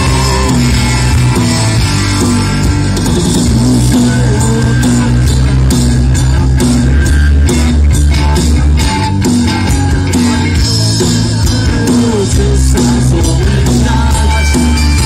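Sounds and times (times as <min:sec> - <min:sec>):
live punk rock band playing loud: 0:00.0 - 0:15.0.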